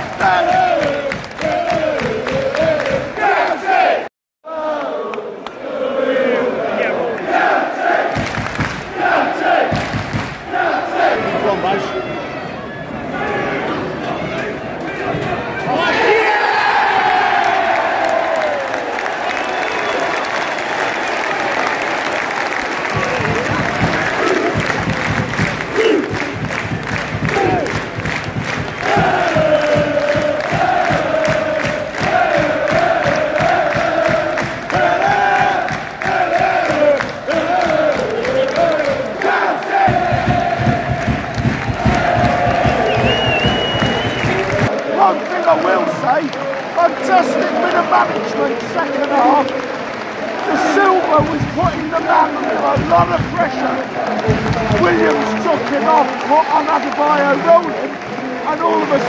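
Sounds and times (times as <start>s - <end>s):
steady repeated beat: 0.0s - 3.1s, 23.0s - 44.7s, 51.1s - 55.2s
crowd singing a chant: 0.0s - 11.6s, 23.0s - 46.1s, 46.8s - 55.9s
football crowd cheering: 0.0s - 59.0s.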